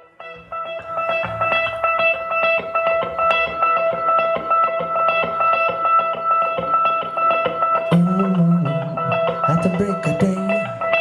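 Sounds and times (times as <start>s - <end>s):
guitar picking repeated figure: 0.0s - 11.0s
steady held tone: 0.0s - 11.0s.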